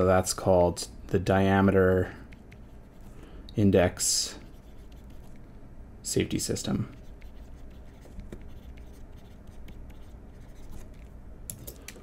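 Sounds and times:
pen scratching on paper: 2.4s - 3.1s, 4.5s - 5.4s, 6.9s - 11.1s.

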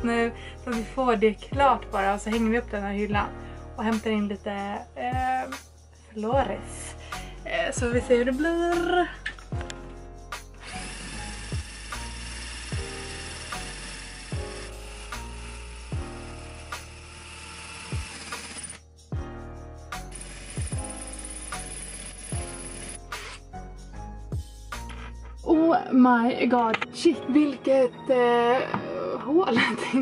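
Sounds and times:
background music with steady beat: 0.0s - 17.2s, 17.8s - 30.0s
cordless drill boring through tile: 10.6s - 18.8s, 20.1s - 23.4s.

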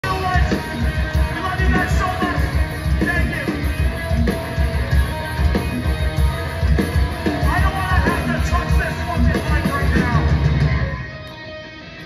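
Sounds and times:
punk band playing live: 0.0s - 12.0s.

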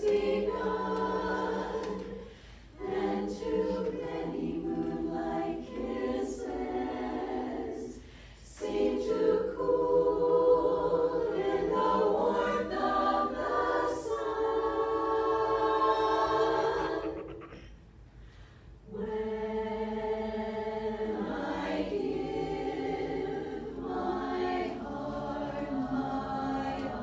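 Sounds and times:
women's chorus singing a cappella: 0.0s - 17.4s, 18.8s - 27.0s
short breaths: 2.2s - 2.7s, 8.0s - 8.4s, 17.6s - 18.8s.

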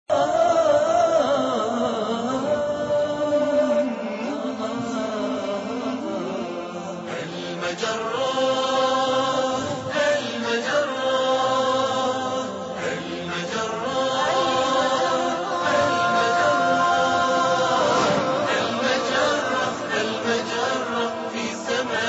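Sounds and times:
chanted vocal theme music: 0.0s - 22.0s.

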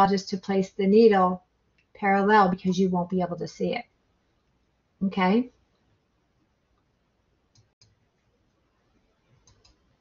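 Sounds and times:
computer mouse clicks: 7.5s - 8.0s, 9.3s - 9.9s.

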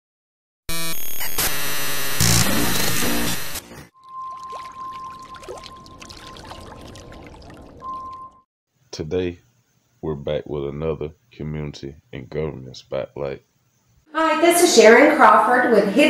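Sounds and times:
steady high tone: 3.9s - 6.9s.

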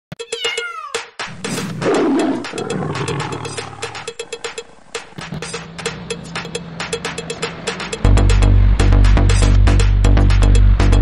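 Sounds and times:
clicking percussion: 0.1s - 8.5s
cat meowing: 0.2s - 1.1s.

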